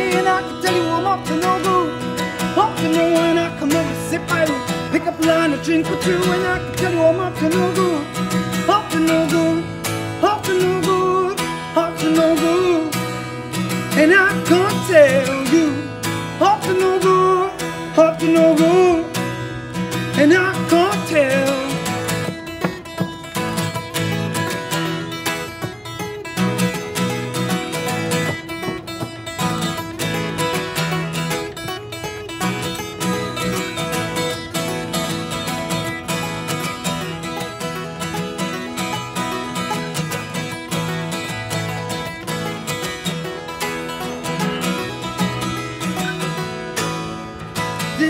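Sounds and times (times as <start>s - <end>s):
acoustic guitars playing: 0.0s - 48.0s.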